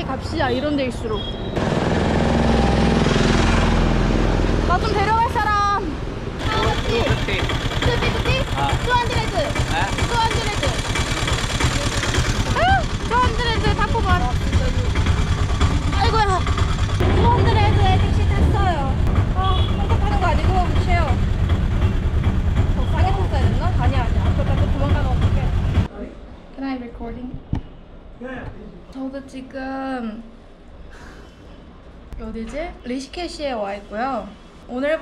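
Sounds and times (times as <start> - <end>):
rickshaw engine rumbling: 0.0 - 25.9
voices talking: 4.6 - 22.0.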